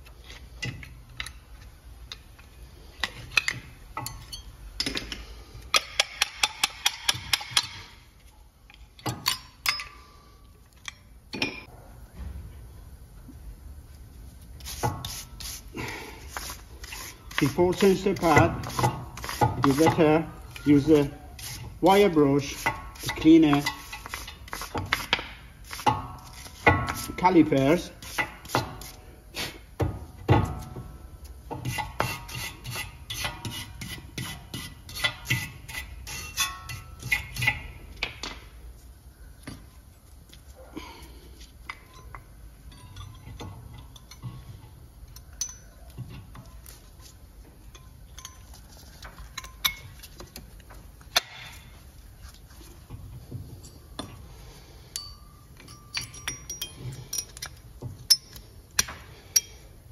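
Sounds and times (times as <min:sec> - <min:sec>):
wire brush scrubbing metal: 0:14.6 - 0:29.0
metallic clicks and clinks: 0:41.6 - 0:50.2, 0:54.9 - 0:59.6.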